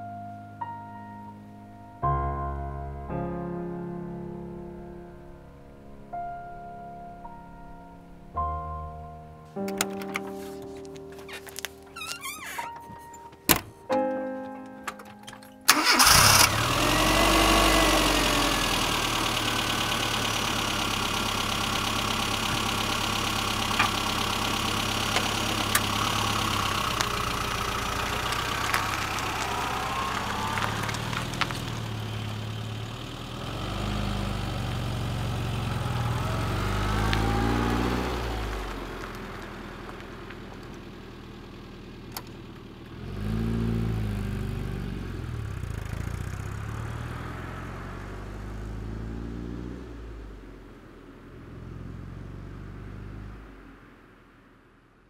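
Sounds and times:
car engine revving: 0:15.7 - 0:53.6.

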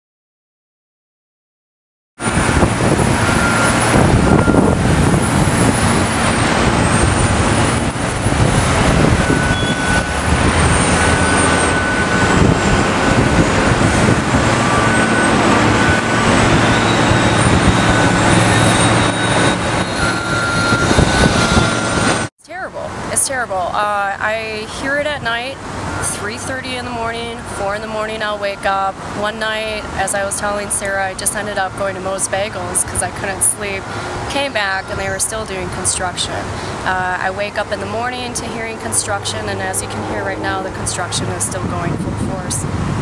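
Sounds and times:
heavy machinery engines running: 0:02.2 - 0:23.1, 0:24.3 - 0:43.0.

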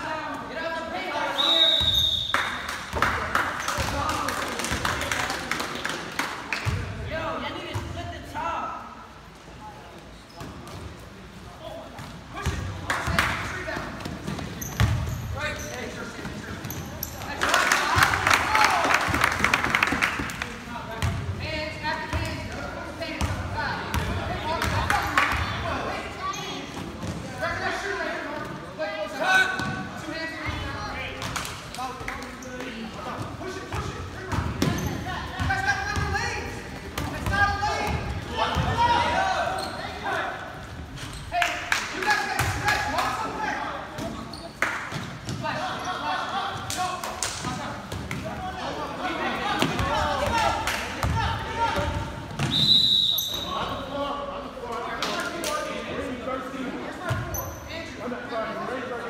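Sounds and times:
basketball bouncing on court: 0:14.0 - 0:15.2, 0:51.0 - 0:52.5
players and spectators calling out: 0:34.8 - 0:44.6.

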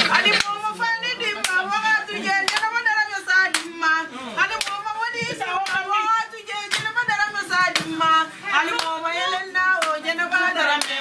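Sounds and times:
rhythmic hand clapping: 0:00.0 - 0:11.0
several voices: 0:00.0 - 0:11.0.

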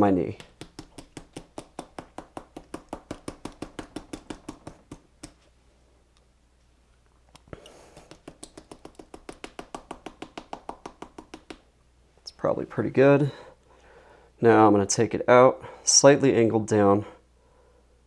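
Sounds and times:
hair stacker tapping: 0:00.3 - 0:05.4, 0:08.0 - 0:11.6.

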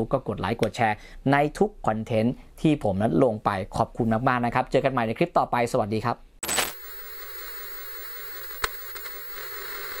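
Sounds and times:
burst of static noise: 0:06.5 - 0:10.0
tape hiss: 0:06.7 - 0:10.0.

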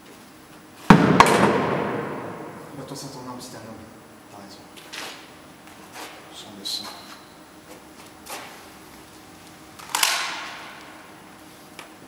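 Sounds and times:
gunshot with echo: 0:00.9 - 0:03.1.

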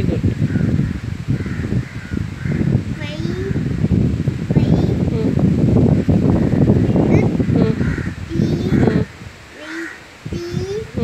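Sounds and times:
child reading aloud: 0:02.9 - 0:03.8, 0:04.4 - 0:05.5, 0:06.8 - 0:11.0
bird giving harsh calls: 0:06.4 - 0:09.0, 0:09.6 - 0:10.1.

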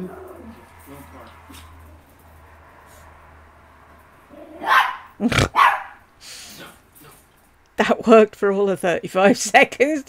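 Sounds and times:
dog barking: 0:04.6 - 0:06.0.

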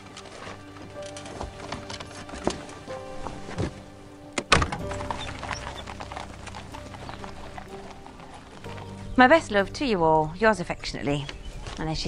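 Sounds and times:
horse hooves on stone paving: 0:00.0 - 0:03.9, 0:04.6 - 0:09.9
background music: 0:00.0 - 0:12.0.

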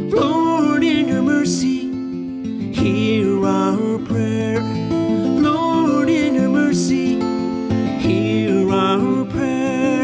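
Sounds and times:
fingerpicked acoustic guitar: 0:00.0 - 0:10.0
man singing: 0:00.0 - 0:10.0.

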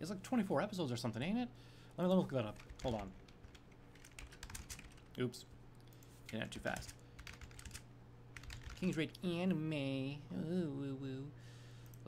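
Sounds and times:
typing on computer keyboard: 0:02.6 - 0:05.1, 0:06.6 - 0:07.8, 0:08.4 - 0:08.9.

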